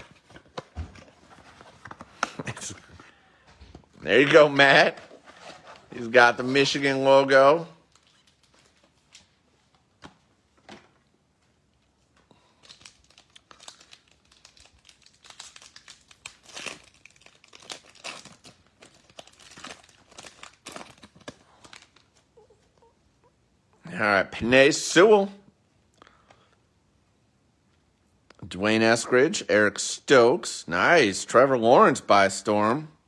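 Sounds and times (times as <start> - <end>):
wrapper crinkling and tearing: 4.1 - 9.4, 12.3 - 22.4.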